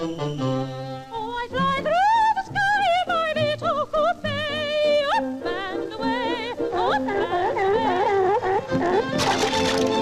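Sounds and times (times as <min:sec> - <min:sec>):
orchestral accompaniment: 0:00.0 - 0:01.7.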